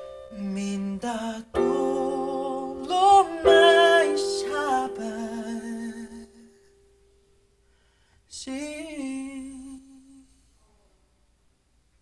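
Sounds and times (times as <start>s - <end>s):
faint room noise: 0.0s - 12.0s
man singing unaccompanied: 0.3s - 6.7s, 8.3s - 10.6s.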